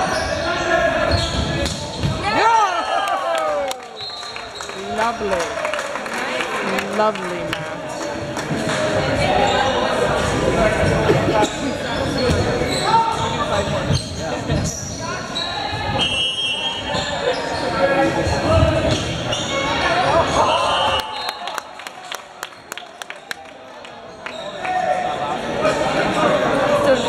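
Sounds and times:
people calling out in a hall: 0:00.0 - 0:07.1, 0:15.0 - 0:21.8.

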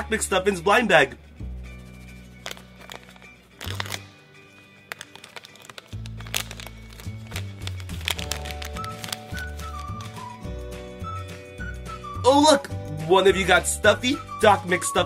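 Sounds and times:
plastic foil bag crinkling: 0:02.4 - 0:10.4
background music with bass line: 0:06.7 - 0:15.0.

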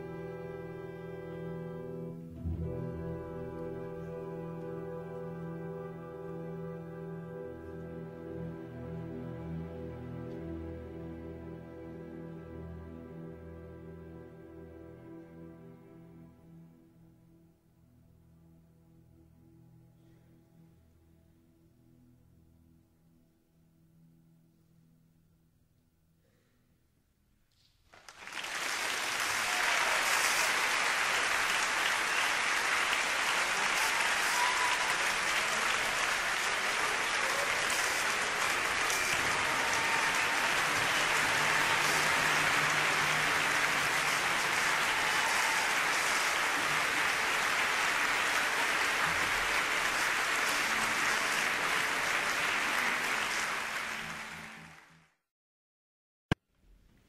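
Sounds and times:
large audience applauding: 0:27.9 - 0:55.2.

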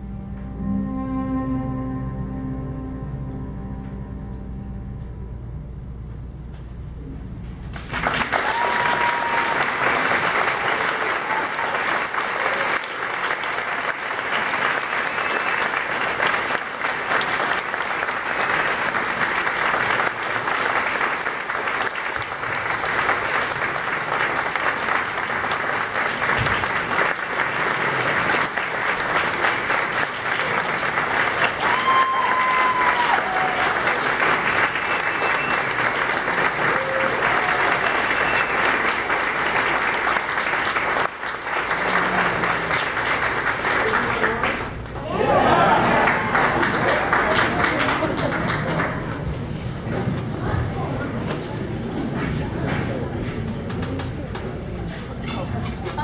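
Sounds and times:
audience applauding: 0:07.7 - 0:50.0
audience whoops: 0:08.0 - 0:13.8, 0:31.2 - 0:39.1, 0:45.0 - 0:47.2.

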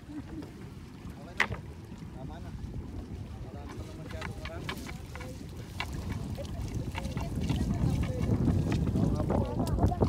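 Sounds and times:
water sloshing: 0:00.0 - 0:10.0
wind rumble on microphone: 0:00.0 - 0:10.0.

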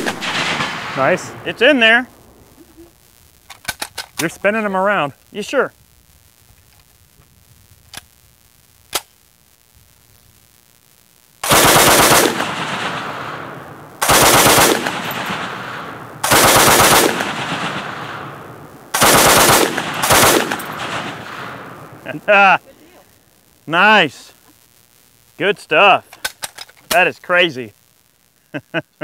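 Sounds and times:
machine gun bursts with echo: 0:00.0 - 0:02.0, 0:11.4 - 0:22.0
sharp clicks: 0:03.4 - 0:04.4.

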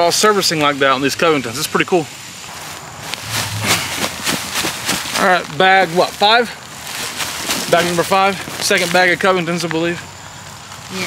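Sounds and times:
fabric grow bag rustling: 0:02.5 - 0:09.0.

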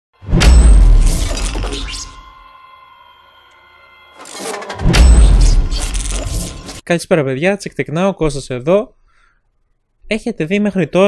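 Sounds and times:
deep boom with shattering crash: 0:00.3 - 0:02.2, 0:04.8 - 0:06.7.

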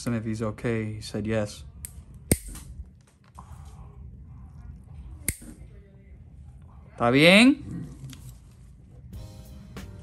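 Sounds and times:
nail nippers clipping: 0:01.8 - 0:02.7.

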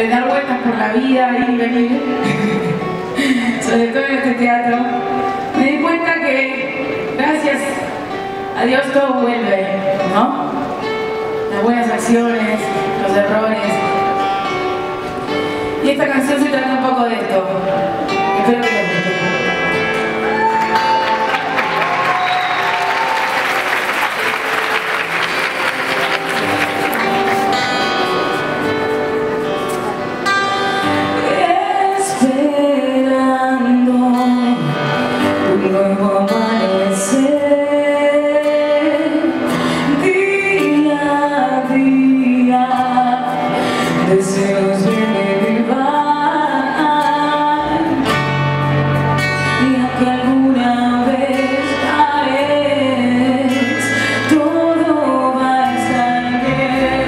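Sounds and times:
woman singing lead vocal: 0:00.0 - 0:14.2, 0:31.0 - 0:48.4, 0:49.2 - 0:57.0
acoustic band with guitars: 0:00.0 - 0:57.0
audience applause: 0:20.2 - 0:28.1.

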